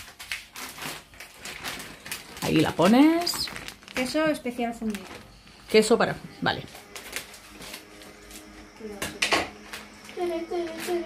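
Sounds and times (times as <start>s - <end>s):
plastic bag crinkling: 0.0s - 5.9s, 6.5s - 8.5s, 9.6s - 11.0s.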